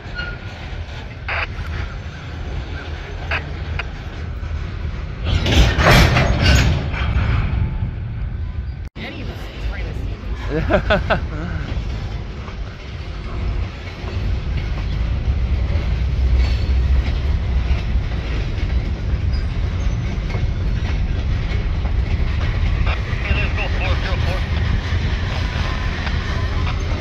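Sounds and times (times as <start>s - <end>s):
train wheels rumbling on rail: 0.0s - 27.0s.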